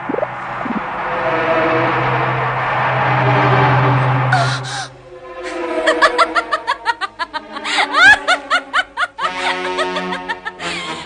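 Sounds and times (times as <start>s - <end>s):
background music: 0.1s - 11.0s
cartoon character laughing: 5.8s - 11.0s.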